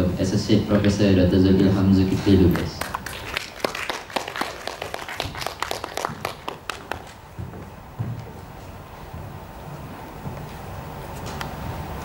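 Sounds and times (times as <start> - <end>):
scattered applause: 2.5 - 7.2.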